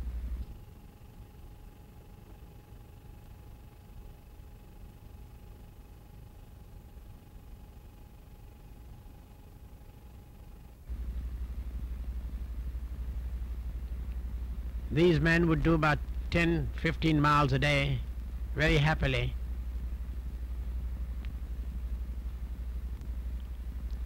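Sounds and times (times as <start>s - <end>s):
loud low hum: 0.0s - 3.0s, 10.8s - 24.0s
film soundtrack hiss: 0.0s - 24.0s.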